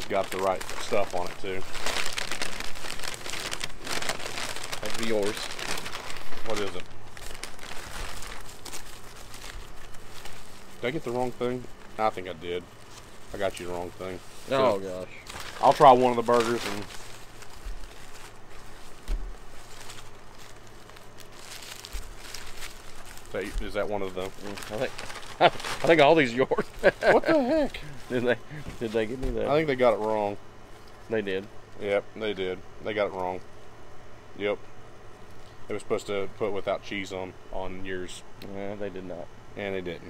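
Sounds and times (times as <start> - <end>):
paper bag and wrapper crinkling: 0.0 - 31.3.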